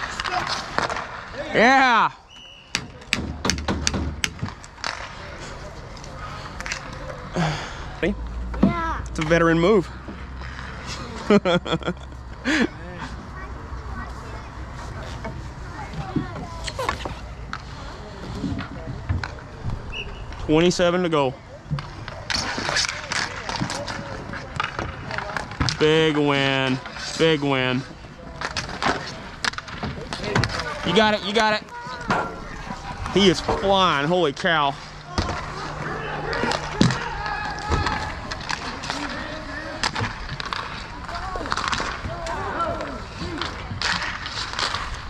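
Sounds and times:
hockey sticks and puck clacking: 0.0s - 1.7s, 2.3s - 7.3s, 8.5s - 12.6s, 13.8s - 45.0s
players calling: 19.8s - 45.0s.

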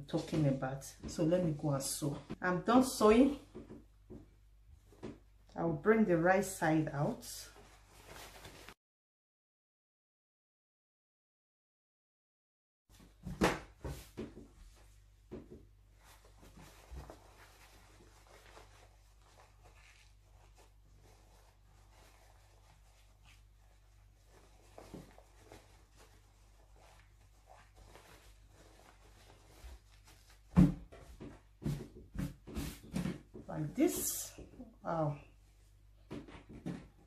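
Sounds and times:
fabric rustling: 7.0s - 8.8s, 12.9s - 35.8s
fabric thump on table: 13.2s - 14.4s.

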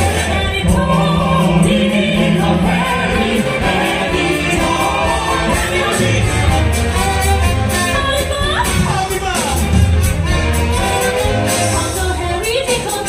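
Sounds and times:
symphony orchestra playing: 0.0s - 13.0s.

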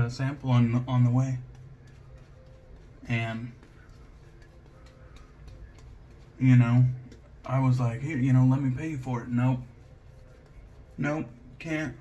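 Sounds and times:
shaving brush scratching stubble: 0.1s - 12.0s.

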